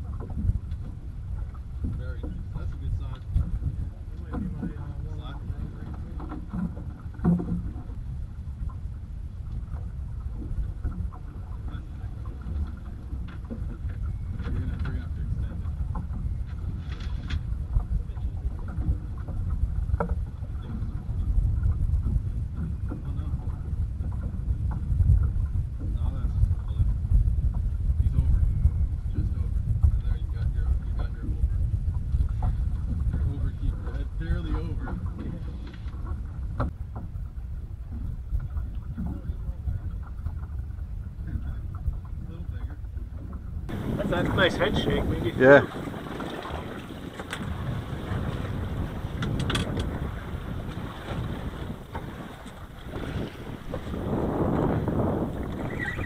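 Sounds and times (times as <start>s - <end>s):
water washing against boat hull: 0.0s - 28.3s, 29.2s - 56.0s
wind rumble on microphone: 0.0s - 56.0s
knocks and clicks of gear: 49.2s - 50.0s.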